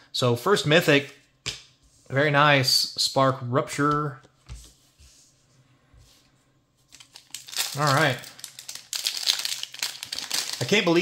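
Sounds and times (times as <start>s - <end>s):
foil wrapper crinkling: 6.9s - 11.0s.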